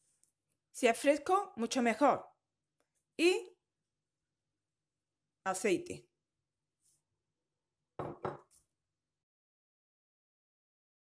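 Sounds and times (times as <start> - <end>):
kitchen items knocking and clinking: 8.0 - 8.6.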